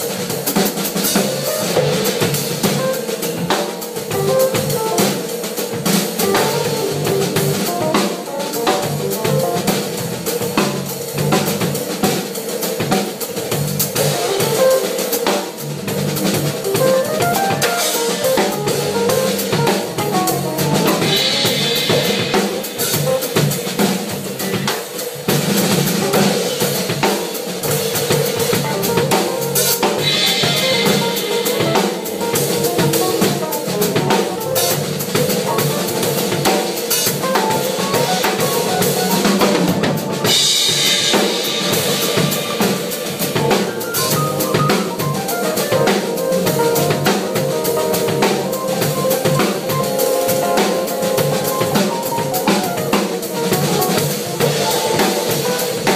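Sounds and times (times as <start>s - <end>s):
drum kit playing: 0.0s - 55.9s.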